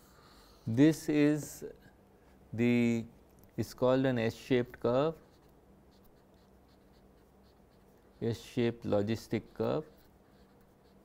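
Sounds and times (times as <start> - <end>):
pen scratching on paper: 4.4 - 11.0.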